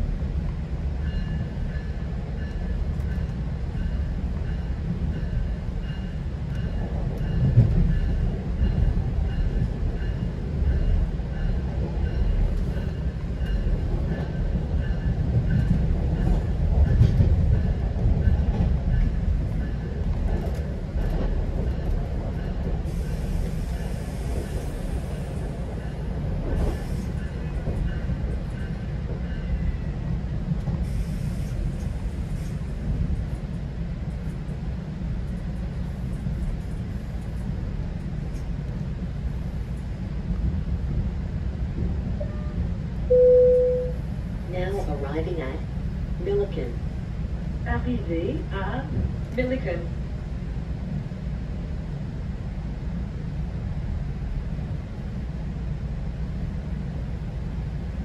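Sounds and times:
train wheels rumbling on rails: 0.0s - 43.2s, 43.9s - 58.0s.

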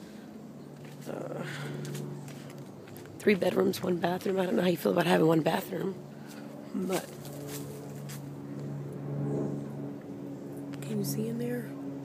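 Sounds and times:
low mechanical hum: 0.0s - 12.0s.

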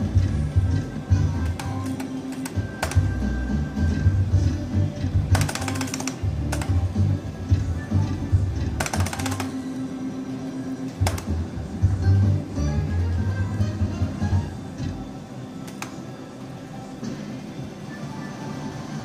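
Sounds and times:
slot machine music and jingles: 0.0s - 19.0s.

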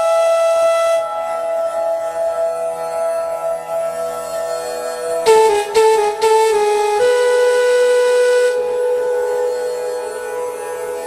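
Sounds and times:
breathy flute note: 5.2s - 10.5s.

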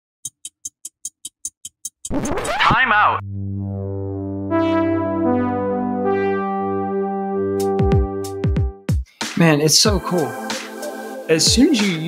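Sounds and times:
quick clock ticks: 0.2s - 2.6s.

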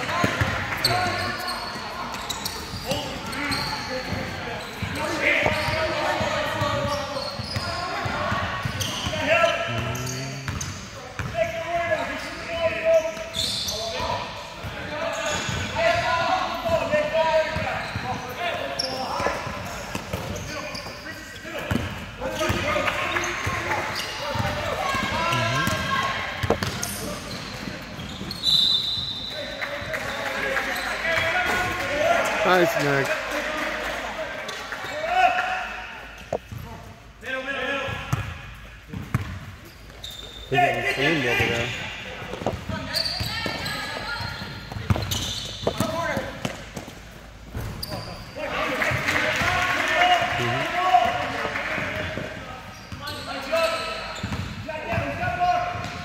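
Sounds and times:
basketball bouncing on floor: 26.4s - 26.8s.

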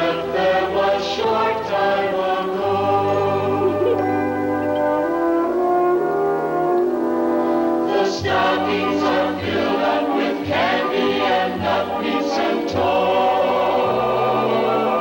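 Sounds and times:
choir singing: 0.0s - 5.0s, 7.7s - 15.0s
orchestral accompaniment: 0.0s - 15.0s.

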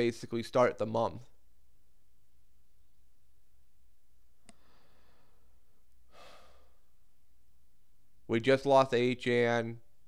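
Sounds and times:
man sighing: 6.1s - 6.9s.

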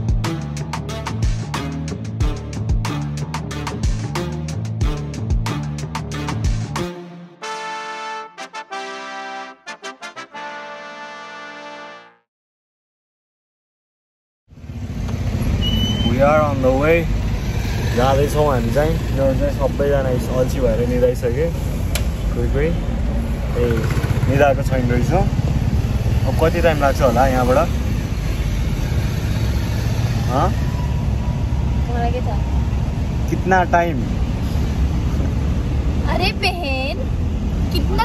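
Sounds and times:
car engine and road noise: 0.0s - 7.0s, 14.5s - 38.0s.

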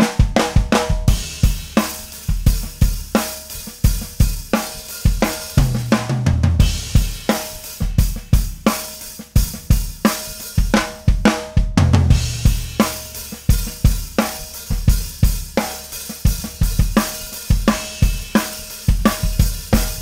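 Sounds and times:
drum kit groove: 0.0s - 20.0s.

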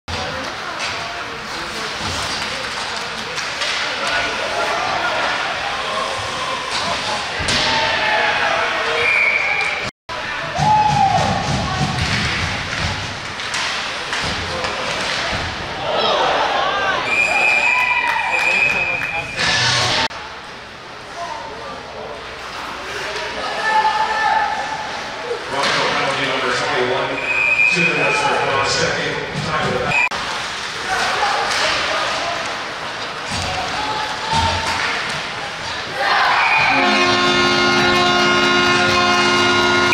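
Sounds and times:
pucks and bodies hitting boards: 0.1s - 5.4s, 6.0s - 8.1s, 9.6s - 16.2s, 25.5s - 26.6s, 29.2s - 39.9s
people shouting: 10.3s - 12.0s, 35.9s - 39.9s
referee's whistle blowing: 17.1s - 19.5s, 27.1s - 28.3s, 36.4s - 39.9s.

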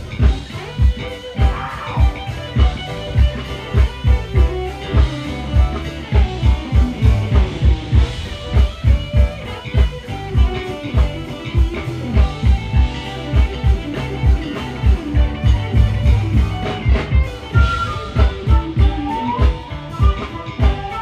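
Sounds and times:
steady kick drum: 0.0s - 19.0s
live band playing upbeat groove: 0.0s - 21.0s.

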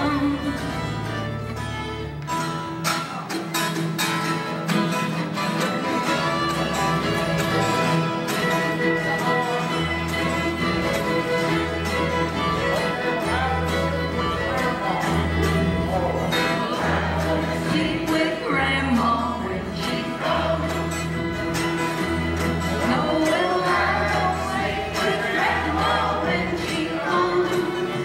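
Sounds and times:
banjo: 0.0s - 28.0s
fiddles playing melody: 0.0s - 28.0s
lap dulcimer: 0.0s - 28.0s
strummed acoustic guitars: 0.0s - 28.0s.

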